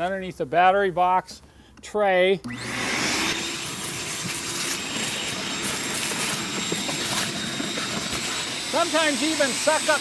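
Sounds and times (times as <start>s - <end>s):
shop vac running: 2.4s - 10.0s.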